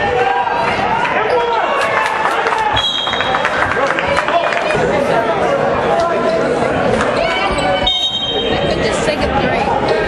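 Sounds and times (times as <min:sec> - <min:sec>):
spectators talking: 0:00.0 - 0:10.0
referee whistle: 0:02.8 - 0:03.4, 0:07.8 - 0:08.6.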